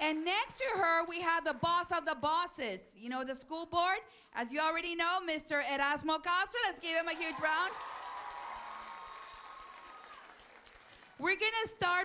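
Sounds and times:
audience applauding: 0:07.2 - 0:11.3.

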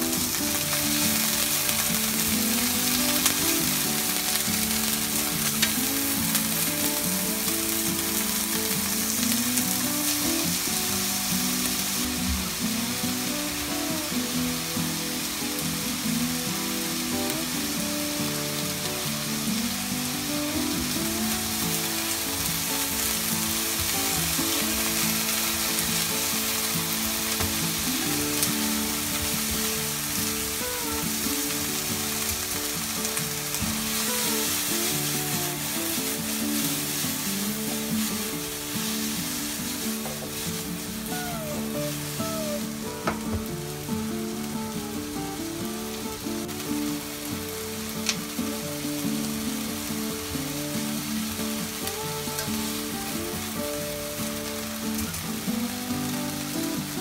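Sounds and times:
meat sizzling in a frying pan: 0:00.0 - 0:57.0.

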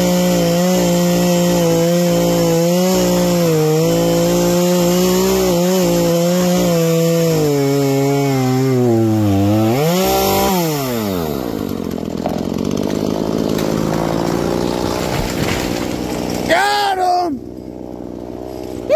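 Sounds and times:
chainsaw cutting wood: 0:00.0 - 0:18.9
tree falling rush: 0:09.3 - 0:16.6.

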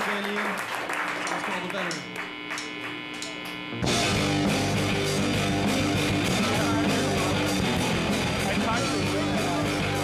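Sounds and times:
people clapping: 0:00.0 - 0:03.6
guitar amplifier hum: 0:00.8 - 0:10.0
rock band playing: 0:03.8 - 0:10.0.

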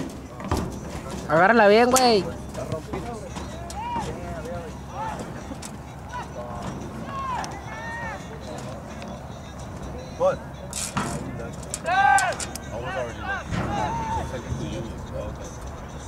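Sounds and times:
background noise: 0:00.0 - 0:16.0
people shouting: 0:03.4 - 0:08.4, 0:11.8 - 0:14.5.

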